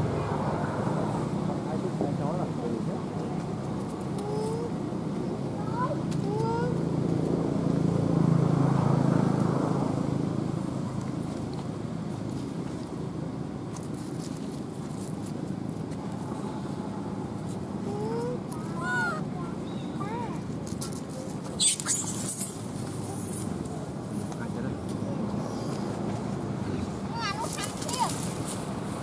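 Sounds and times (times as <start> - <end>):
sharp crackles: 20.7 - 23.8
macaques squeaking: 21.4 - 23.5.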